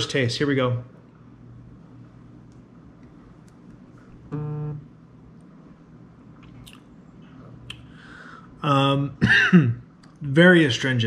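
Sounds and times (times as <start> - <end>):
man humming mm: 4.3 - 4.8.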